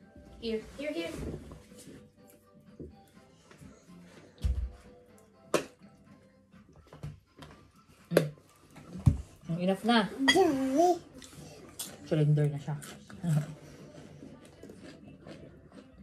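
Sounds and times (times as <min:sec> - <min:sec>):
faint background music: 0:00.0 - 0:16.0.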